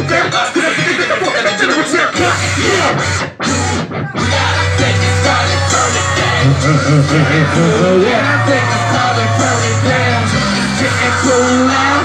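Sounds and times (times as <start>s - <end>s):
rapping over a heavy bass beat: 0.0s - 12.0s.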